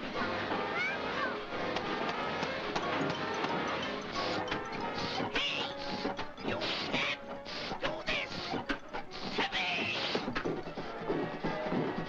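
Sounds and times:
cartoon orchestral music: 0.0 - 12.0.

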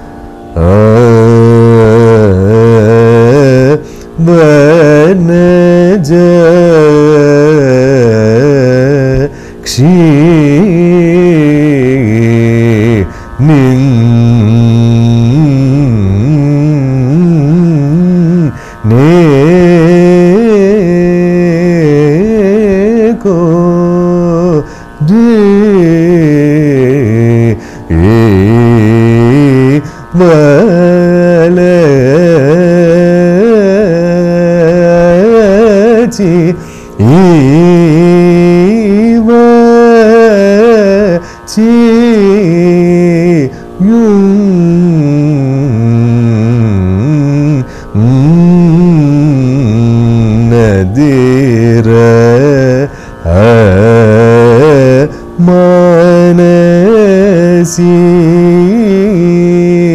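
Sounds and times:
man singing with oscillating notes: 0.0 - 59.9.

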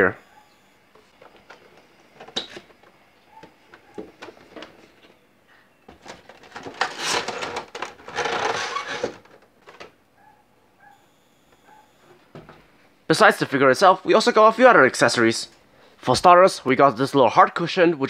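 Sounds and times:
plastic crinkling and scraping: 5.9 - 10.0.

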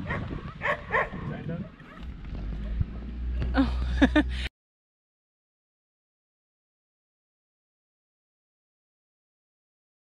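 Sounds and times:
dog barking: 0.0 - 3.1.

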